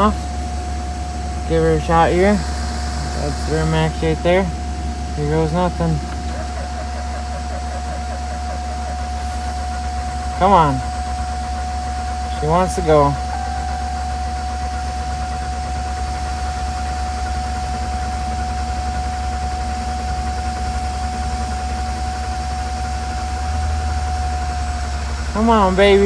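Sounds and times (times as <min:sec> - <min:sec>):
diesel engine cranking with starter: 0:00.0 - 0:26.0.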